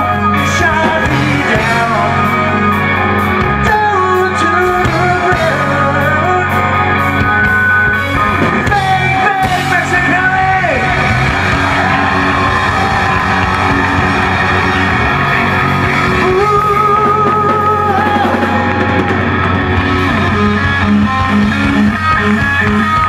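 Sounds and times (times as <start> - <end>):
person singing: 0.0 - 7.9, 8.5 - 11.1, 11.8 - 19.5
bass guitar: 0.0 - 23.0
distorted electric guitar: 0.0 - 23.0
drum kit: 0.0 - 23.0.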